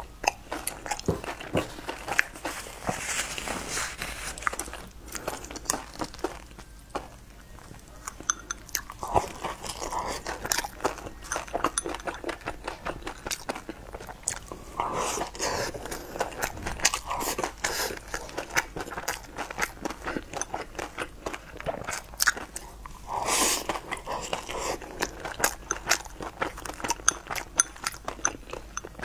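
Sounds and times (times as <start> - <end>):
person chewing sticky rice: 0.0 - 29.0.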